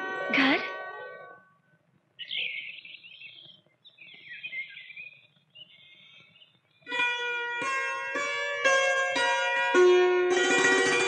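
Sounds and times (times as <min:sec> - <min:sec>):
plucked-string music: 0:00.0 - 0:02.0, 0:06.8 - 0:11.0
small birds chirping: 0:02.1 - 0:07.4.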